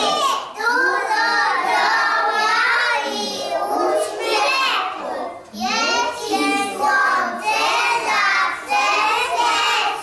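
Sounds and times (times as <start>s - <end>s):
children singing in chorus: 0.0s - 10.0s.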